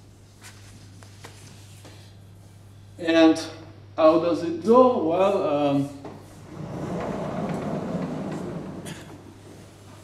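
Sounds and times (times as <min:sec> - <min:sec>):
sliding blackboard panel rumbling: 0:06.2 - 0:10.0.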